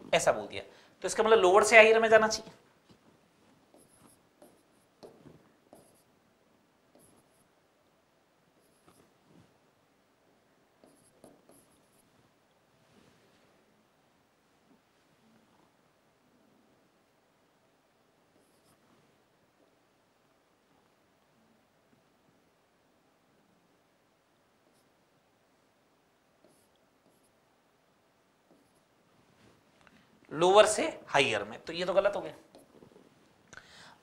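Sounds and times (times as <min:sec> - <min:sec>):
marker pen writing on whiteboard: 0:02.4 - 0:06.2, 0:06.9 - 0:07.6, 0:08.5 - 0:09.6, 0:10.7 - 0:12.2, 0:18.3 - 0:19.8, 0:24.6 - 0:25.1, 0:26.3 - 0:27.5, 0:28.4 - 0:29.0, 0:32.0 - 0:33.0.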